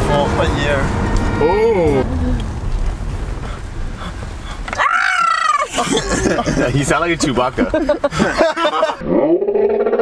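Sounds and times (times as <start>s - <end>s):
car cabin rumble: 0.0s - 5.0s
loud warbling groan: 0.2s - 2.5s.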